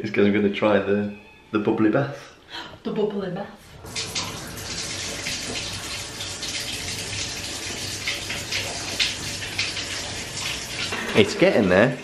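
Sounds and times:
bath tap running into tub: 3.7 - 12.0.

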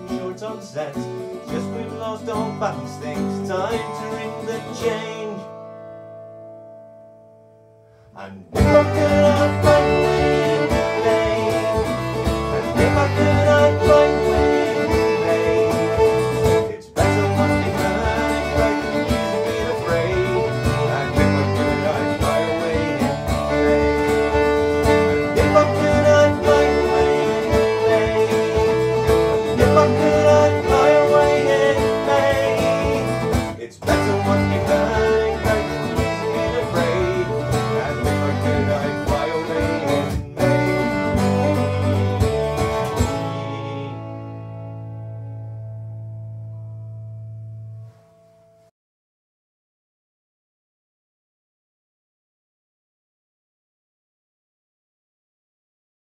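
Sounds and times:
plucked string instrument: 0.0 - 48.5
strummed acoustic guitar: 0.0 - 48.7
fiddle melody: 8.6 - 46.9.

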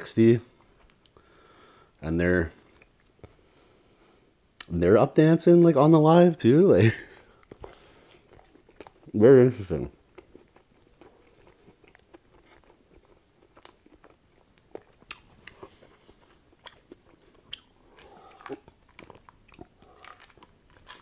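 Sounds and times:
chewing food: 7.1 - 9.2, 9.9 - 21.0.

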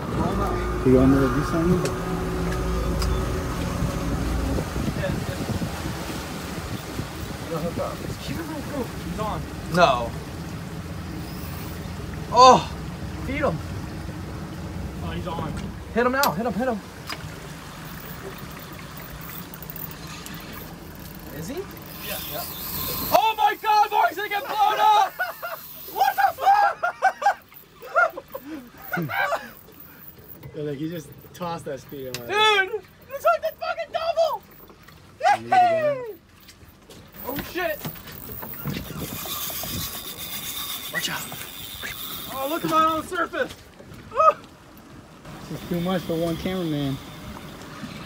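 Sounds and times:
boat engine idling: 0.0 - 35.2, 36.2 - 48.0
water splashing against hull: 0.0 - 48.0.

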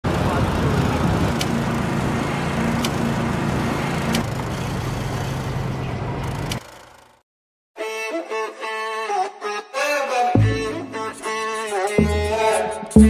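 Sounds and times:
motor rumble: 0.1 - 6.6.

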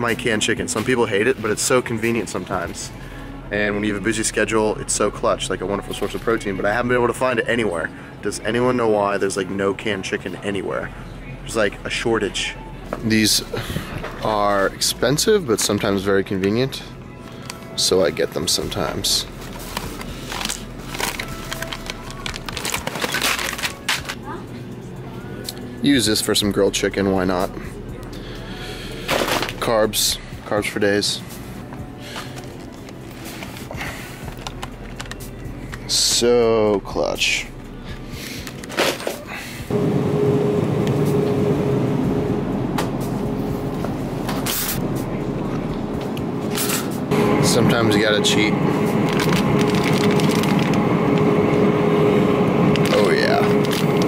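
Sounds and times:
faint background music: 0.0 - 54.0
plastic pouches crinkling: 18.7 - 24.2, 49.0 - 51.2
shopping cart rattling rumble: 46.5 - 54.0.

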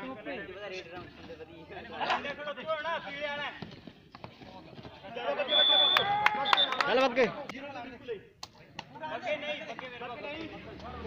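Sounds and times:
referee's whistle blast: 5.4 - 6.8.

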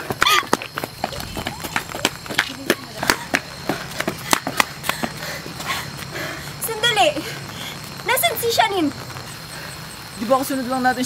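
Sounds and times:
running footsteps on ground: 0.0 - 10.3.

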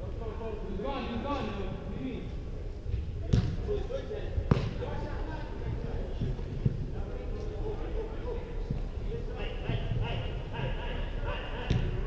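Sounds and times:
ball kicked with echo: 2.9 - 3.8, 4.4 - 4.9.

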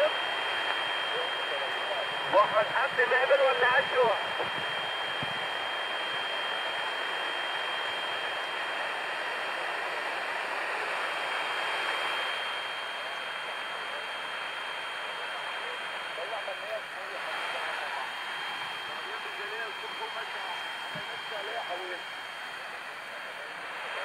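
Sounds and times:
radio band noise: 0.0 - 24.0.

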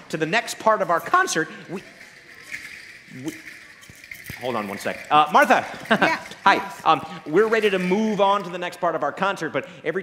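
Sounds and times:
faint rattle of noise-makers: 0.9 - 8.6.

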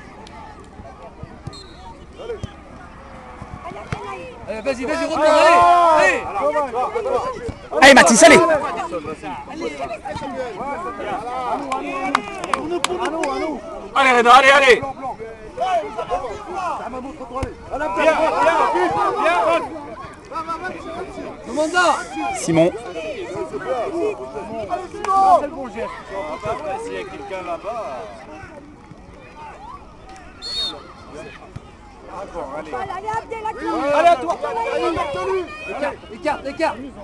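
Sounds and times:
spectators' voices: 0.0 - 37.0
referee's whistle blast: 1.5 - 2.0, 30.4 - 30.9.

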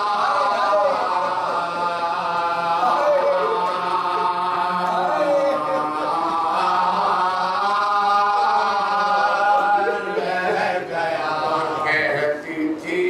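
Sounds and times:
man chanting: 0.0 - 13.0.

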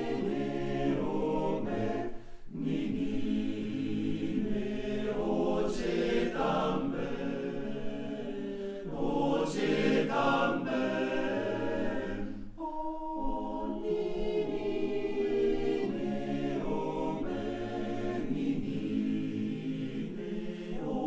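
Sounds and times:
male choir singing a cappella: 0.0 - 21.0.

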